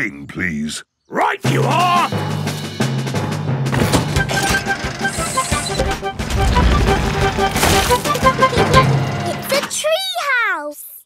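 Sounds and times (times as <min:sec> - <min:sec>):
plucked cartoon music: 0:01.3 - 0:10.0.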